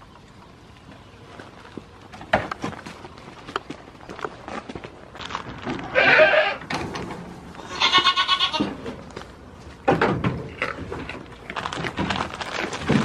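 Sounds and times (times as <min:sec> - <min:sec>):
goat bleating: 0:05.9 - 0:06.6, 0:07.6 - 0:08.8
rustling: 0:10.5 - 0:13.0.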